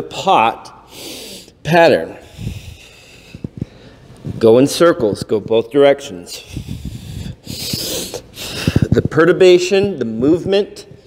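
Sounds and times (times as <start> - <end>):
man breathing hard: 0.8 - 1.6, 2.2 - 4.1, 6.3 - 9.0.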